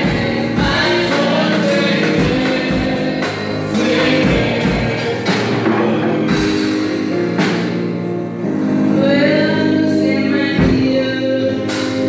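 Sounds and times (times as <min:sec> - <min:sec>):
women singing gospel song: 0:00.0 - 0:06.7, 0:09.0 - 0:11.8
band playing steady beat: 0:00.0 - 0:09.3, 0:10.5 - 0:12.0.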